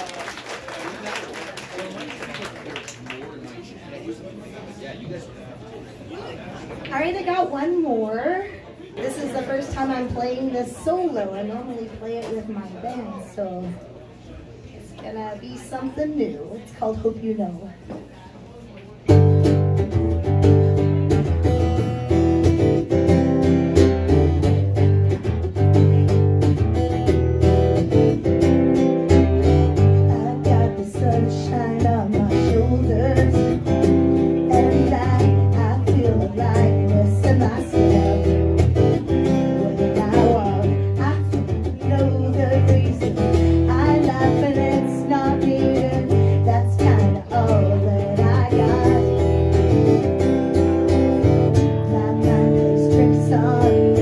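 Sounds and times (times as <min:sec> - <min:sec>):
acoustic guitar strumming: 0:19.1 - 0:54.0
woman singing: 0:29.8 - 0:54.0.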